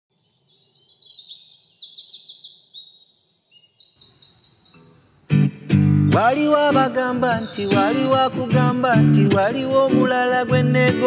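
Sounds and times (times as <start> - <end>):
birds chirping: 0.1 - 11.0
outdoor background noise: 0.1 - 11.0
strummed acoustic guitar chords: 5.3 - 11.0.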